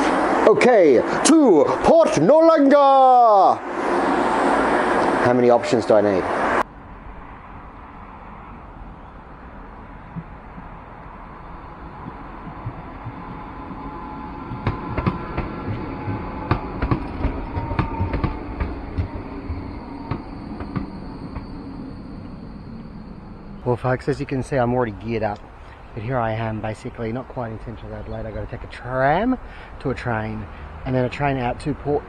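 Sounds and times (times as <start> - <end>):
tram rumbling: 0.0 - 32.0
faint falling whine: 7.4 - 27.7
wheels clicking over rail joints: 10.1 - 25.8.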